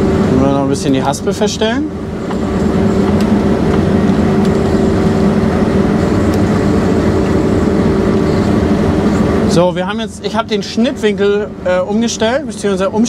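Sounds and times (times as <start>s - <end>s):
combine harvester drone: 0.0s - 13.0s
constant hum: 0.0s - 13.0s.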